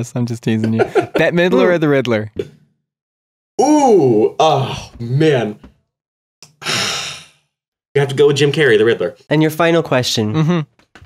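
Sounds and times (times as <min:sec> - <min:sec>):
man sighing: 0:03.6 - 0:05.0, 0:06.5 - 0:07.4.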